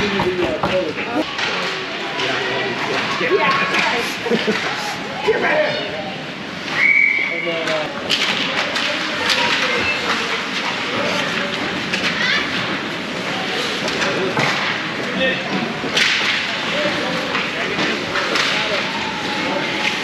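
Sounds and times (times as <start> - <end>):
sticks and puck clacking: 0.0 - 4.8, 7.6 - 20.0.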